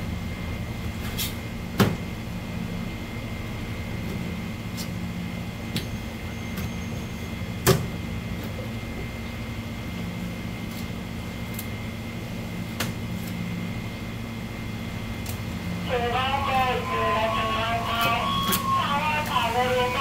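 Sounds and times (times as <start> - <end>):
steady hum: 7.4 - 20.0.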